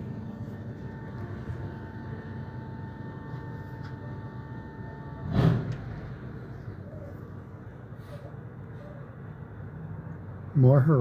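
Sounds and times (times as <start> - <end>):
garbage truck rumbling: 0.0 - 8.2
loud bang: 5.2 - 6.2.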